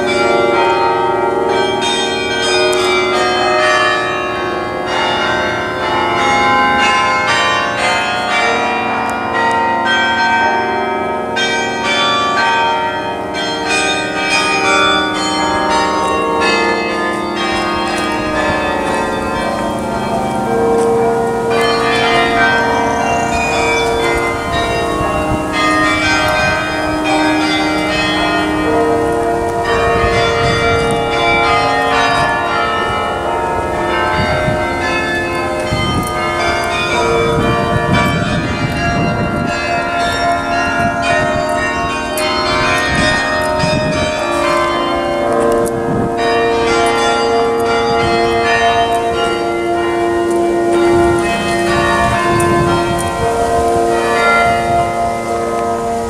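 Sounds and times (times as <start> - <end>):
carillon bells playing a tune: 0.0 - 56.0.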